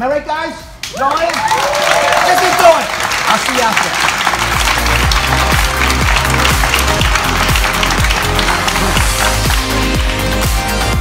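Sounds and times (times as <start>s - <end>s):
electronic dance music: 3.4s - 11.0s
kick drum beat: 5.0s - 11.0s.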